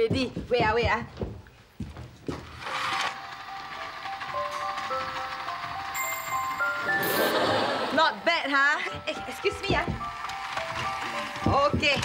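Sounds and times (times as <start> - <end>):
toy train motor whirr: 2.4 - 7.4, 9.4 - 12.0
simple tune of held notes: 4.0 - 7.8.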